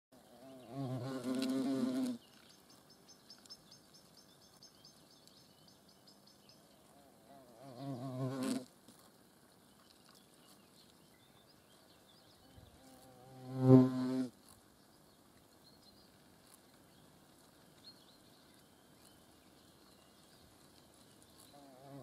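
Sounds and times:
hornet wings buzzing: 0.3 - 2.6, 6.9 - 8.7, 12.6 - 14.4, 21.5 - 22.0.

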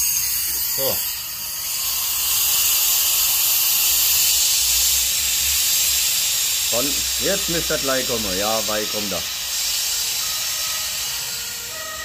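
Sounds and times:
compressed air hissing: 0.0 - 12.0
faint steady whistling tones: 6.8 - 12.0.

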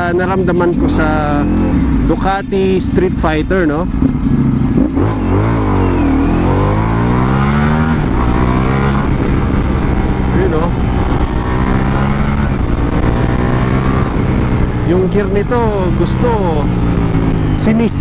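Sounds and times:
motorcycle engine accelerating: 0.0 - 18.0.

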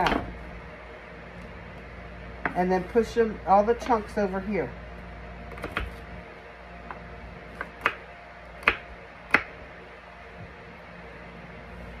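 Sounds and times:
knife chopping on wooden board: 5.5 - 6.0, 6.9 - 8.0, 8.6 - 9.5.

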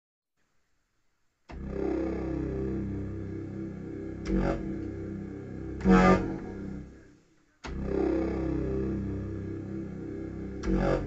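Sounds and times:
electronic keyboard chord: 1.5 - 7.1, 7.7 - 11.0.

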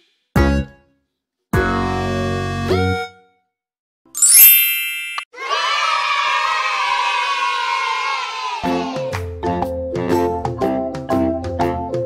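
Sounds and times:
bright chime: 4.2 - 5.3
cheerful music: 4.2 - 5.3, 8.7 - 12.0
children cheering and shouting: 5.3 - 9.1.

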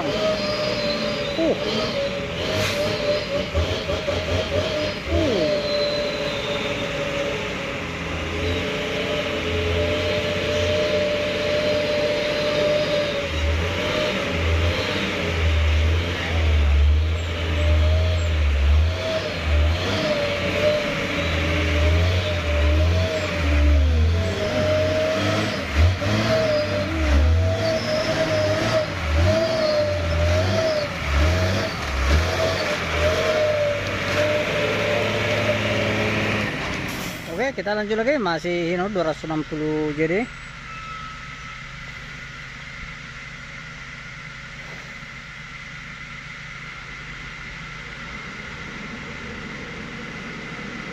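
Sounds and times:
truck diesel engine under load: 0.0 - 50.9
wavering whine: 38.4 - 50.9.

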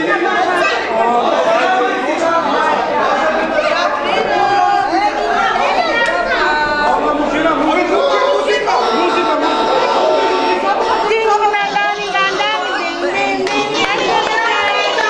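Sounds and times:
crowd babble: 0.0 - 15.0.

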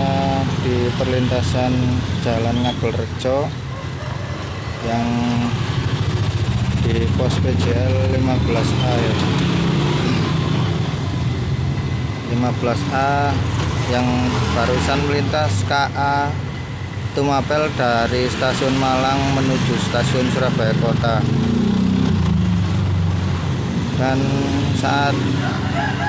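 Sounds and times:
motorcycle engines rumbling: 0.0 - 26.0.

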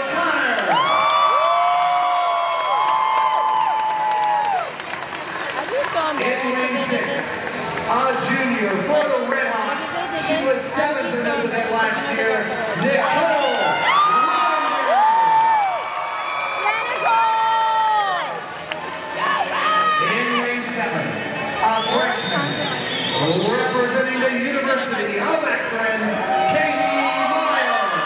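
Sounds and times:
crowd cheering and shouting: 0.0 - 28.0.

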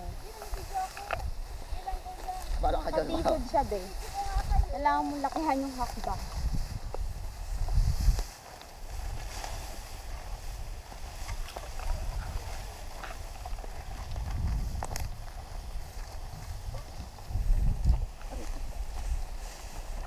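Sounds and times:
tall grass rustling: 0.0 - 20.0
wind buffeting microphone: 0.0 - 20.0.

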